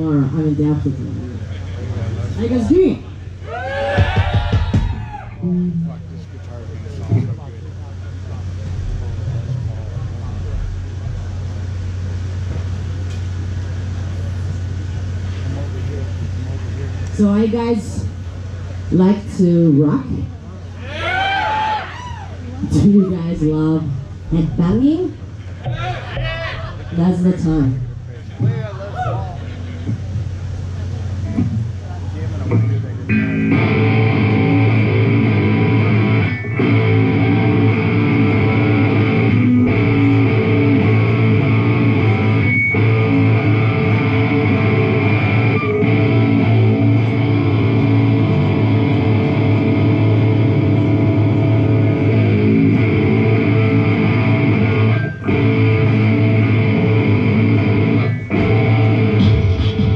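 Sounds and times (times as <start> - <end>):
distorted electric guitar riff: 8.6 - 12.5, 31.2 - 59.9.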